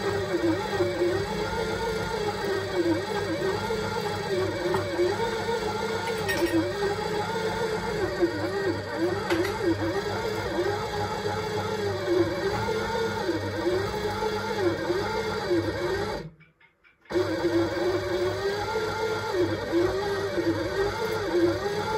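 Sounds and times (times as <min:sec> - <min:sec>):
kitchen machine motor kneading dough: 0:00.0 - 0:21.9.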